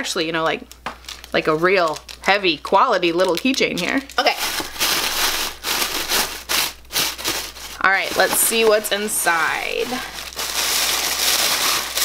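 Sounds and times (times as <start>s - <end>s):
packaging crinkling and rustling: 0.4s - 12.0s.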